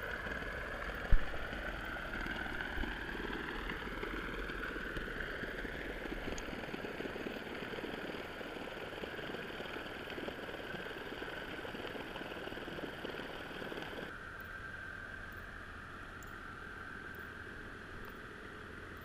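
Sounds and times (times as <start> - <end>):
dense underwater crackling: 0.0 - 14.1
constant high whine: 0.0 - 19.0.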